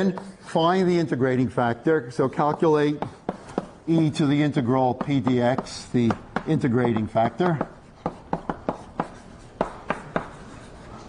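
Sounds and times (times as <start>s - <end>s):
chalk tapping on blackboard: 2.5s - 4.3s, 4.9s - 10.9s.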